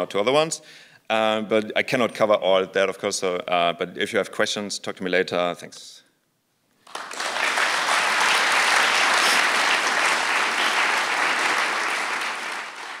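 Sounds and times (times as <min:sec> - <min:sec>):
audience applauding: 0:06.8 - 0:13.0.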